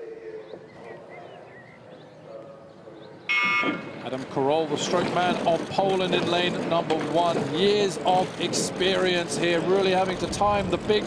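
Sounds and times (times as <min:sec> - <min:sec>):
electronic horn blast: 0:03.3 - 0:04.0.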